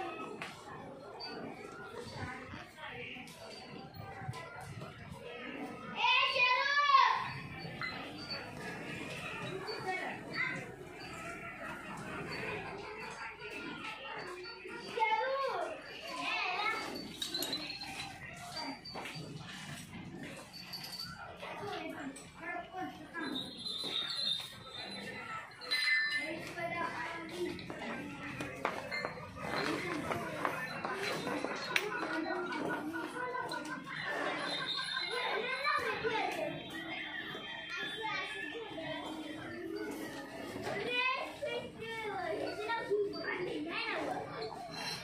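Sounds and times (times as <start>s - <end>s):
people talking: 0.0s - 45.0s.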